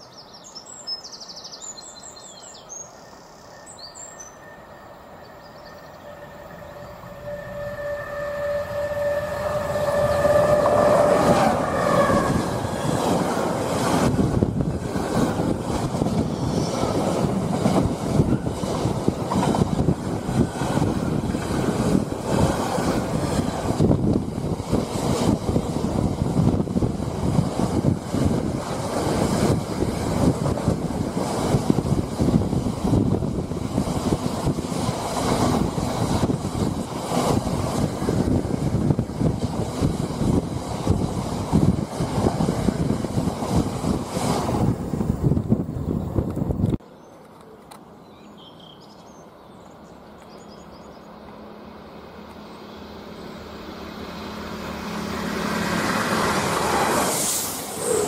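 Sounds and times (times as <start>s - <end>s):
diesel locomotive passing: 1.6s - 48.4s, 49.0s - 58.0s.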